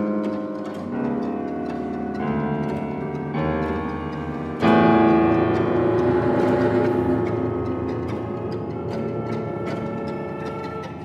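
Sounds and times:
chamber ensemble sustained chords: 4.5s - 11.0s.

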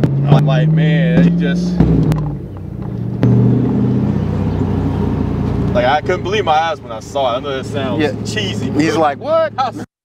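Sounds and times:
car engine under throttle: 0.0s - 9.8s
road and wind noise: 0.0s - 9.9s.

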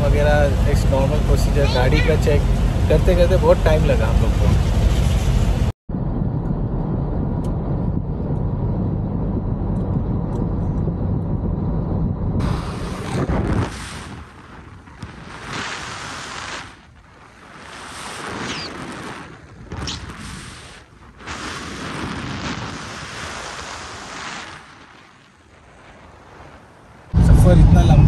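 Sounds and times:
car road and engine noise: 0.0s - 15.5s
wind rushing over microphone: 0.0s - 28.0s.

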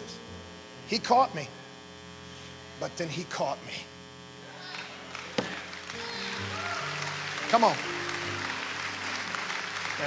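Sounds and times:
keyboard sustained chords: 0.0s - 3.9s, 5.0s - 10.0s
congregation applauding: 4.7s - 10.0s.

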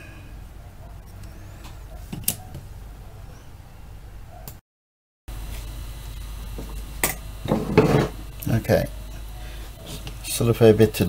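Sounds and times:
steady low hum: 5.3s - 11.0s.

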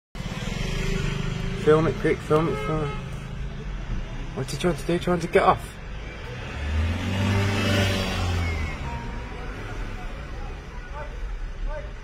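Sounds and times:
vehicle engine passing by: 6.0s - 10.5s.

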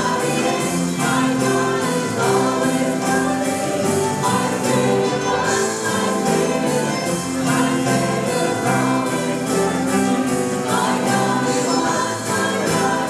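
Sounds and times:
drums: 0.0s - 13.0s
piano: 0.0s - 13.0s
voices singing in harmony: 0.0s - 13.0s.

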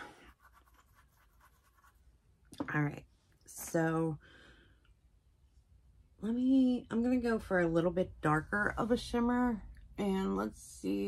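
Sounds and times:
makeup brush scratching: 0.1s - 2.0s.

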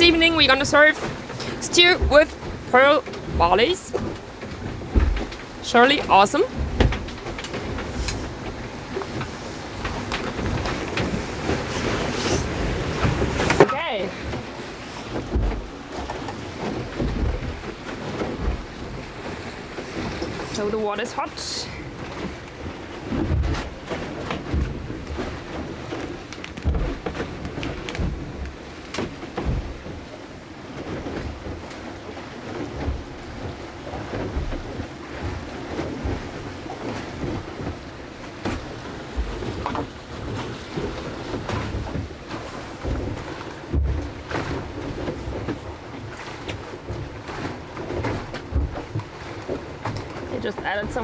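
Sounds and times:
rushing water: 0.0s - 51.0s
hull thumps: 0.3s - 20.6s, 22.0s - 30.1s, 32.5s - 51.0s.

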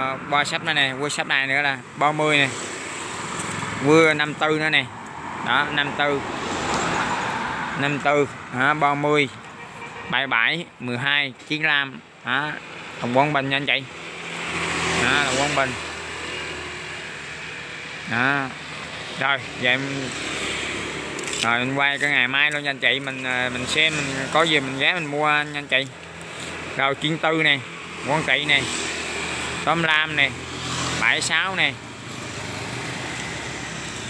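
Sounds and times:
road traffic passing: 0.0s - 34.0s.

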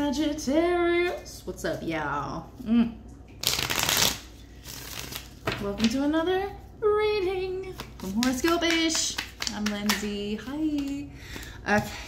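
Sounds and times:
cards shuffling: 3.4s - 5.6s.

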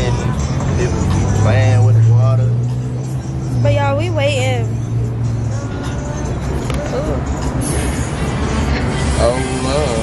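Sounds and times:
background music: 0.0s - 10.0s
traffic: 0.0s - 10.0s.

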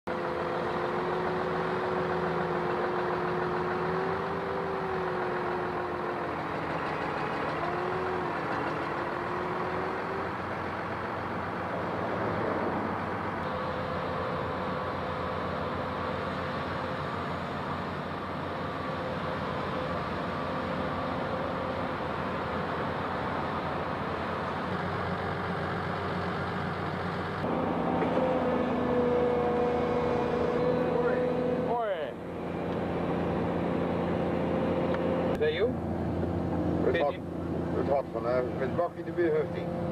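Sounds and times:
hydraulic whine: 0.1s - 25.6s, 27.3s - 35.4s
excavator diesel engine running: 0.1s - 39.9s.

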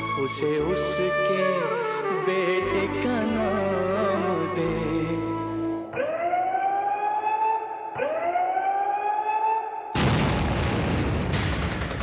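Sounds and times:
rising siren wails: 4.6s - 10.0s.

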